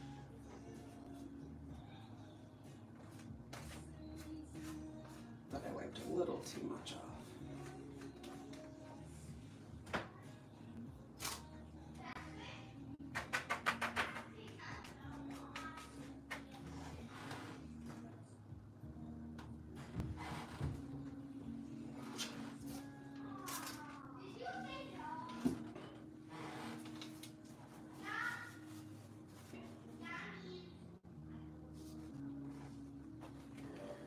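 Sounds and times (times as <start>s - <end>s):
faint background music: 0.0s - 34.0s.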